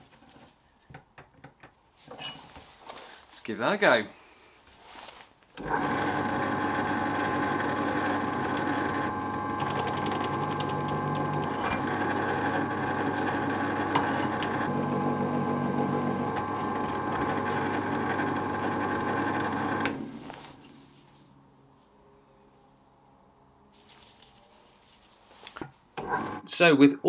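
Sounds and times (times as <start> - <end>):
drill chuck spinning down: 5.6 - 20.0
drill press motor running: 5.6 - 20.2, 26.0 - 26.5
drill bit scraping metal: 10.5 - 14.7.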